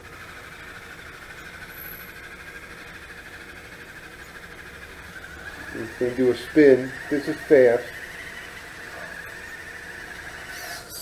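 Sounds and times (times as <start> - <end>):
robot motors whining: 0.0 - 11.0.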